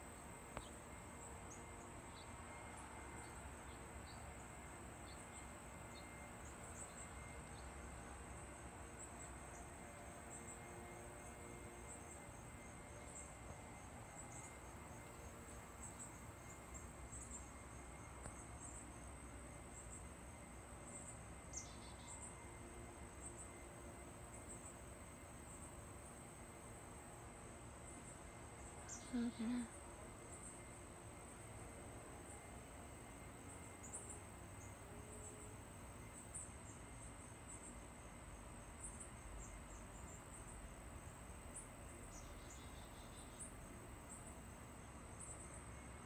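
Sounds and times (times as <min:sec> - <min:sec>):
insects droning: 0:00.0 - 0:46.0
low outdoor hiss: 0:00.0 - 0:46.0
short insect chirp: 0:09.0 - 0:22.6, 0:27.8 - 0:46.0.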